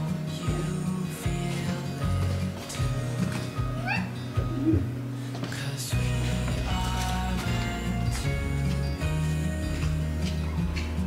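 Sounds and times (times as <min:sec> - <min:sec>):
background music: 0:00.0 - 0:11.0
cat meowing: 0:03.8 - 0:04.9.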